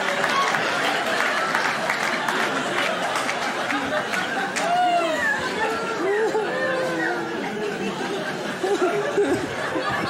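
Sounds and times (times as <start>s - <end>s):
voices chattering in large room: 0.0s - 10.0s.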